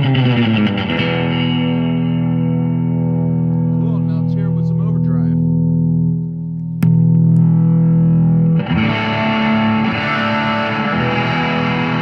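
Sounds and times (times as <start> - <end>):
electric guitar chords and picked notes: 0.0 - 12.0.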